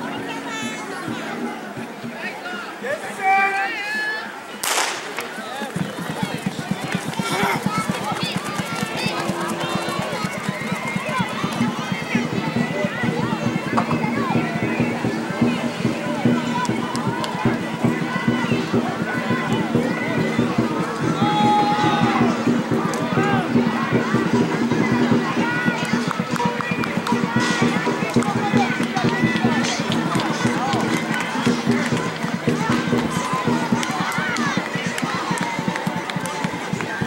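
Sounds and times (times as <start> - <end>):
people talking and calling out: 0.0 - 37.0
background music: 5.7 - 37.0.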